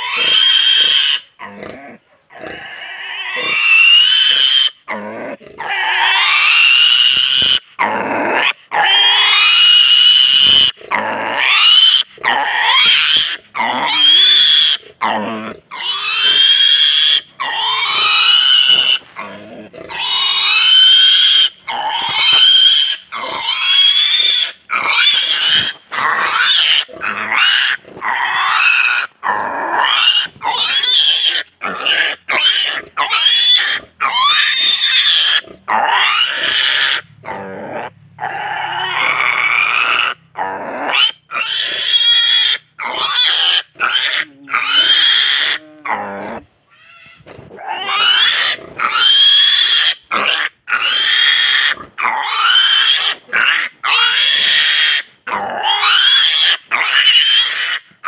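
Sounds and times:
pig squealing: 0:00.0 - 0:57.9.

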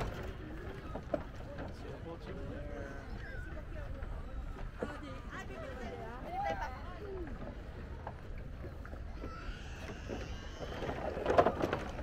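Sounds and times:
board rolling over wooden planks: 0:00.0 - 0:02.8, 0:06.8 - 0:12.0.

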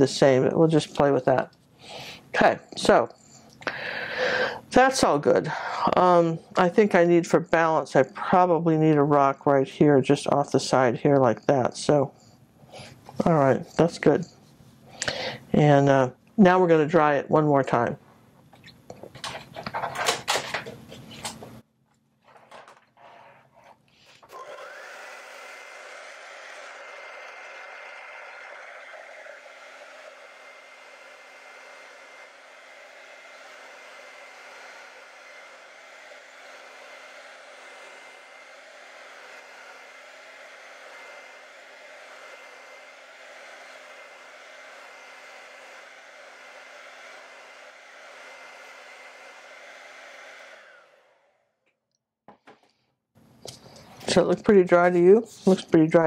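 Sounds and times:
hair dryer running: 0:00.0 - 0:09.4, 0:24.1 - 0:51.6.

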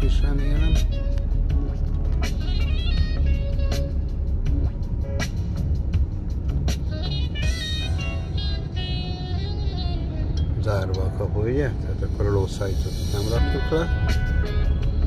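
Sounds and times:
music playing: 0:00.0 - 0:15.0
road and engine rumble: 0:00.0 - 0:15.0.

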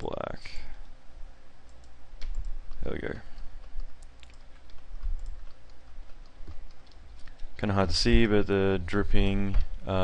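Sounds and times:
low steady hum: 0:00.0 - 0:10.0
computer mouse and keyboard clicks: 0:01.7 - 0:07.7.

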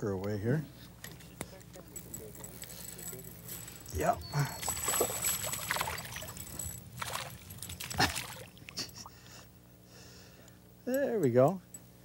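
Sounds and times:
fish splashing at water surface: 0:04.6 - 0:09.0.

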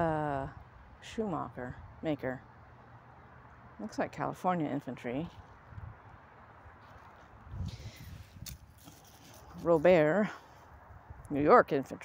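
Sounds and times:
footsteps on grass and leaves: 0:06.7 - 0:09.8.

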